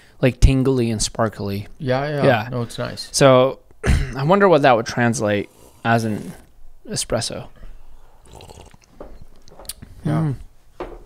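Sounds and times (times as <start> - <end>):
man sipping coffee: 5.4 - 6.6, 7.8 - 9.9.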